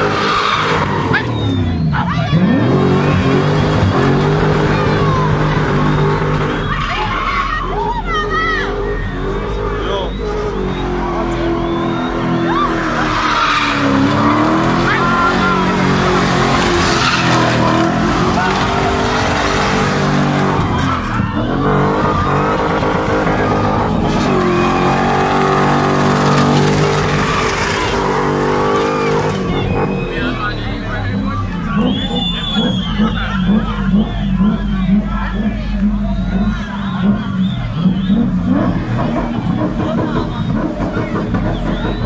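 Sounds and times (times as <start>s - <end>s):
car engine at high revs: 0.0s - 42.0s
tyres squealing: 0.0s - 42.0s.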